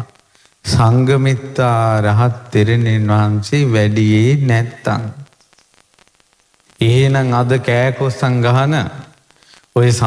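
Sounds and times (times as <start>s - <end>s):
monk chanting: 0.0s - 5.3s, 6.8s - 9.1s.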